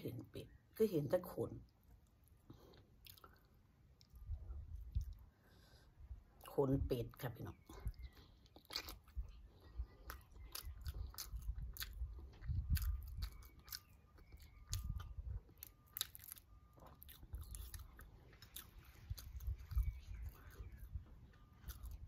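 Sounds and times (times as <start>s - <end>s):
person chewing and biting egg: 2.0s - 5.3s, 7.8s - 22.0s.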